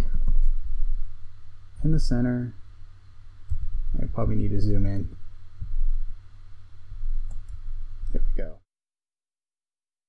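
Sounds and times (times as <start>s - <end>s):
steady low hum: 0.0s - 8.6s
computer mouse clicks: 7.2s - 8.2s.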